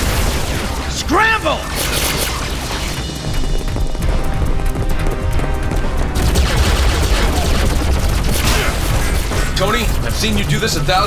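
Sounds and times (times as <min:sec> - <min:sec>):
shot and blast effects: 0:00.0 - 0:03.2, 0:06.2 - 0:10.0
dramatic music: 0:00.0 - 0:11.0.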